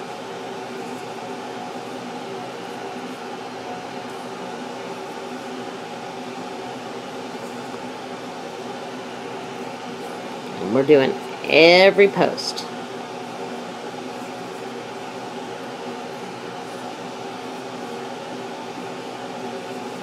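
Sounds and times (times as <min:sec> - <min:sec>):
air conditioner fan humming: 0:00.0 - 0:20.0.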